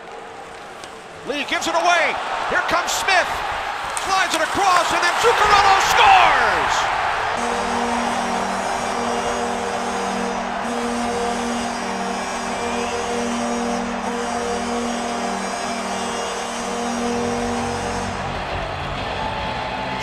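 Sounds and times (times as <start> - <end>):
crowd cheering: 0.0 - 20.0
arena goal horn blasts: 4.2 - 18.9.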